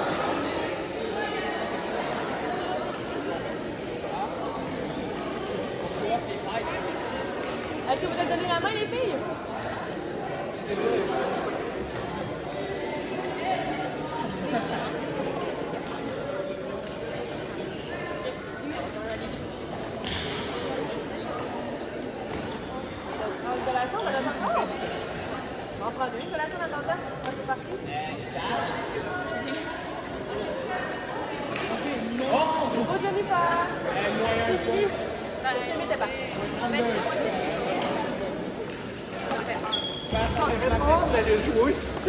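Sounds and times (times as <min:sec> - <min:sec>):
brief high squeak: 0:39.7 - 0:40.2.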